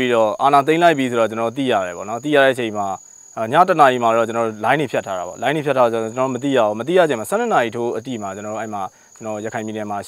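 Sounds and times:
high-pitched insect drone: 0.0 - 10.0
man talking: 0.0 - 10.0.

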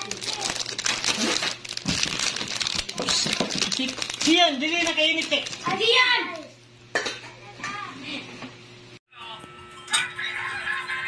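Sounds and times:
bubble wrap crackling: 0.0 - 6.0
plastic packaging crinkling: 0.0 - 6.0.

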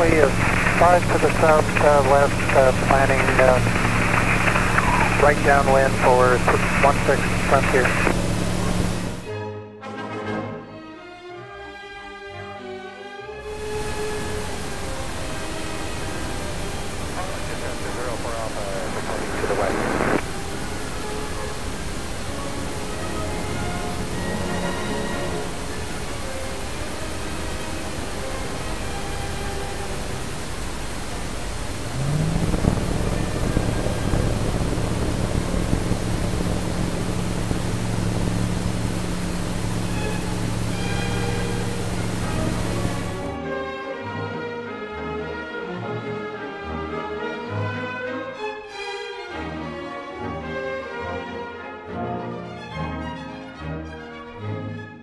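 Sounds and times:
cabin and wind noise: 0.0 - 9.2, 13.6 - 43.3
aircraft engine and propeller: 0.0 - 9.3, 13.5 - 43.4
brief rising whine: 0.0 - 9.3, 13.5 - 43.4.

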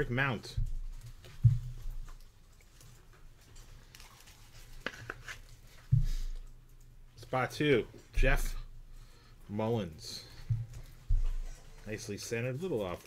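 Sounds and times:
low thumps: 8.1 - 9.1, 10.3 - 11.8.

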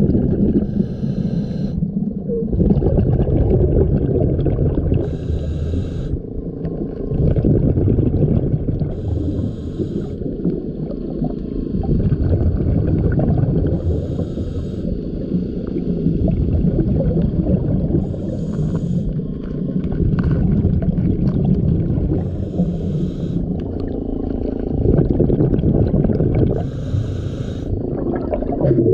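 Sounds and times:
underwater rushing rumble: 0.0 - 0.8, 1.9 - 5.1, 6.8 - 9.3, 10.2 - 14.2, 15.1 - 18.7, 19.3 - 28.9
hiss of exhaled bubbles: 0.0 - 28.9.

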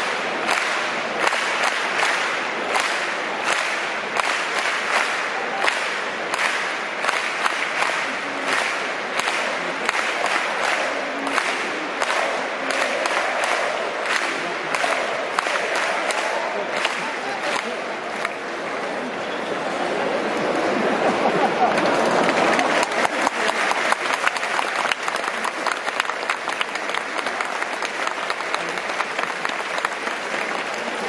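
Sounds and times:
sharp nearby handclaps: 0.0 - 18.4
stadium crowd applauding: 0.0 - 31.0.

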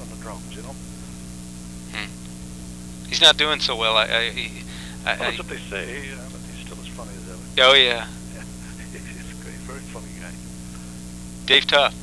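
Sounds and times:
electrical hum with hiss: 0.0 - 12.0
man saying hmm: 4.6 - 7.3, 8.0 - 10.3.

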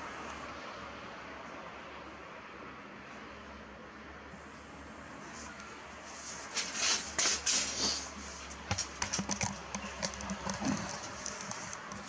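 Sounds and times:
camera handling clicks and rustling: 8.8 - 12.0.

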